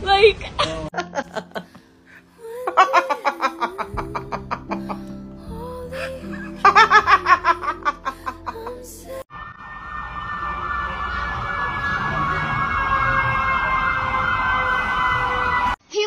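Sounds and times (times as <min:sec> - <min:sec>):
person laughing: 0:00.6 - 0:01.8, 0:02.5 - 0:05.1, 0:06.0 - 0:09.0
steady high tones: 0:03.6 - 0:15.8
siren-like wailing tone: 0:09.3 - 0:15.8.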